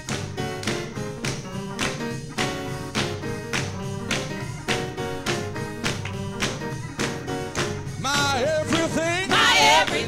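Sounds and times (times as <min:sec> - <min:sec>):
choir clapping along: 0:00.0 - 0:10.0
gospel band music: 0:00.0 - 0:10.0.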